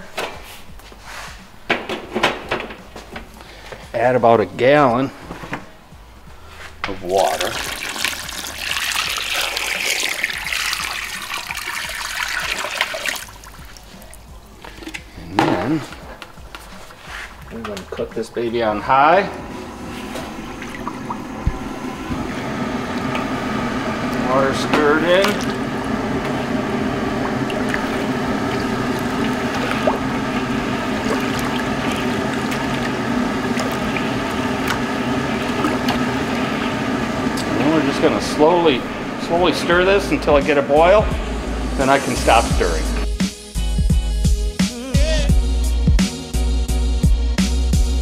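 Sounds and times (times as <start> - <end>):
metal knocks and clunks of kettle: 1.7 - 2.8
low even hum: 17.3 - 43.2.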